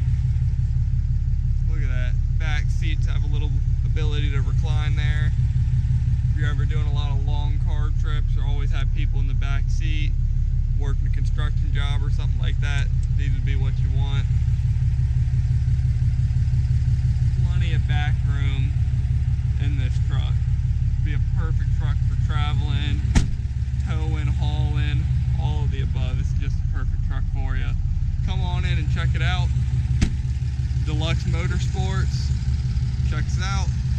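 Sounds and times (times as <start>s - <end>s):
diesel engine idling: 0.0s - 33.9s
sharp thump: 23.0s - 23.5s, 29.9s - 30.4s.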